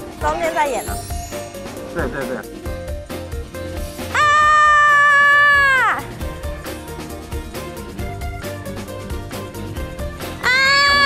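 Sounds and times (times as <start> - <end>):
background music: 0.0 - 11.0
woman screaming: 4.1 - 6.1, 10.4 - 11.0.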